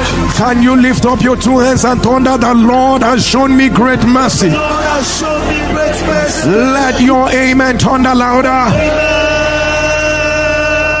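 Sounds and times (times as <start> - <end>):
loud steady held note: 0.0 - 11.0.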